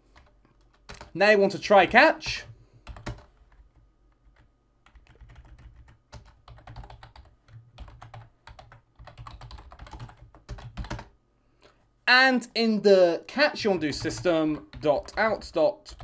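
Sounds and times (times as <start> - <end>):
typing on computer keyboard: 0.2 - 1.1, 2.9 - 11.1.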